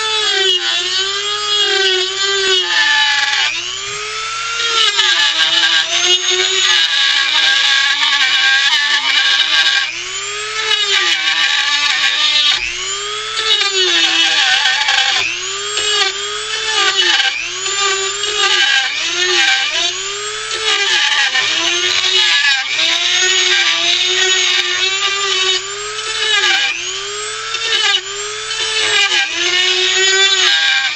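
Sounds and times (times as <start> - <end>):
rotary tool grinding wood: 0.0 - 30.9.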